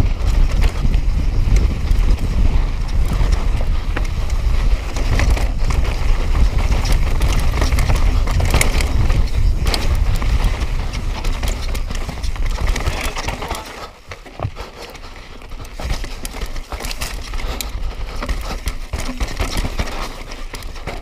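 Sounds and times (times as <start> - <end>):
tyres crunching over dirt and stones: 0.0 - 21.0
wind rumble on microphone: 0.0 - 21.0
bike rattling knocks: 0.1 - 21.0.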